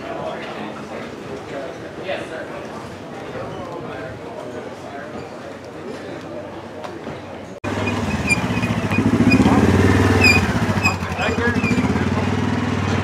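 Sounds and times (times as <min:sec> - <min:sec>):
crowd voices: 0:00.0 - 0:13.0
vehicle engine rumble: 0:07.6 - 0:13.0.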